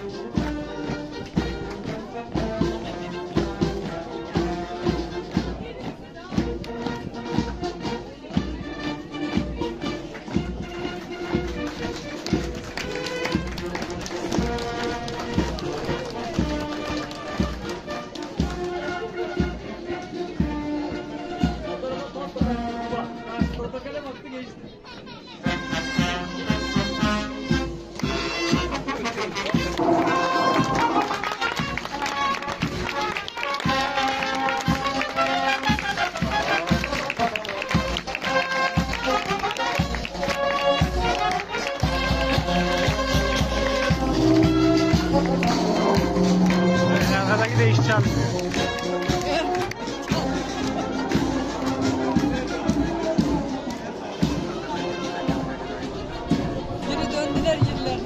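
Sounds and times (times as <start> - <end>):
military brass band march: 0.0 - 24.0, 25.4 - 58.0
steady drum beat: 41.8 - 54.6.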